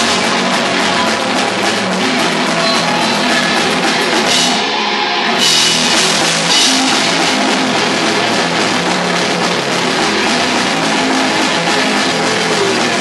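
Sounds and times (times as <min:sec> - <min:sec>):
distorted electric guitars: 0:00.0 - 0:13.0
drum kit: 0:00.0 - 0:13.0.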